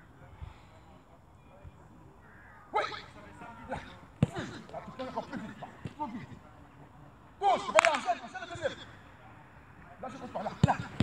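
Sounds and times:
football kicked: 0:03.8 - 0:06.3, 0:10.3 - 0:11.0.

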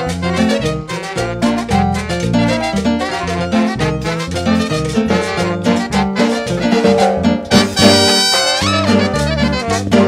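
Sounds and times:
latin dance band playing: 0:00.0 - 0:10.0
horns: 0:02.4 - 0:10.0
drums keeping a steady beat: 0:06.5 - 0:08.4.

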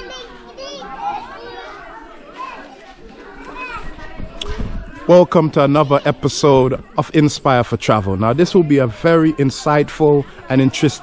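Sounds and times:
young children calling and chattering: 0:00.0 - 0:11.0.

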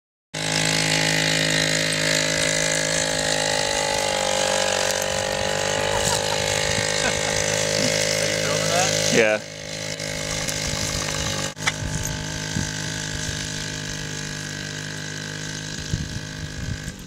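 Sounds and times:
atv engine running: 0:00.4 - 0:17.0.

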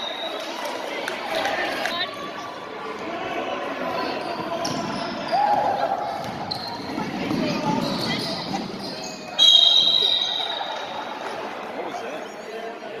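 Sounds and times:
echoing voices in hall: 0:00.0 - 0:13.0.

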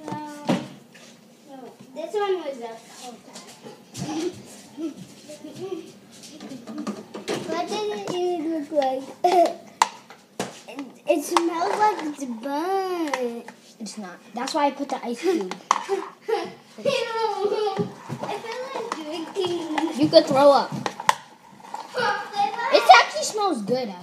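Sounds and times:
children talking and exclaiming: 0:01.5 - 0:09.8, 0:10.6 - 0:24.0.

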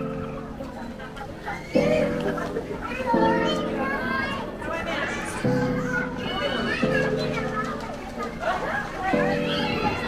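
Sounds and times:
children shouting at play: 0:00.0 - 0:10.0.

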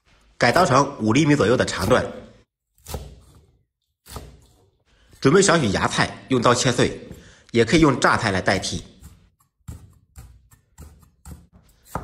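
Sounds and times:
cleaver chopping on wooden block: 0:09.0 - 0:12.0.

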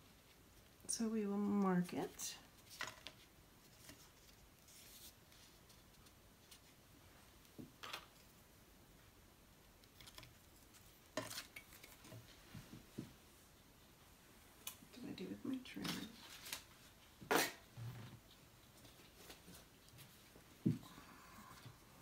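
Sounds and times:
paper rustling: 0:02.6 - 0:06.8, 0:15.8 - 0:17.0.

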